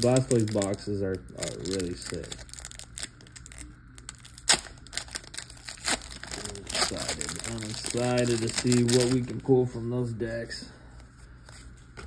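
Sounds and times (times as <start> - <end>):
foil wrapper crinkling: 0.0 - 9.6.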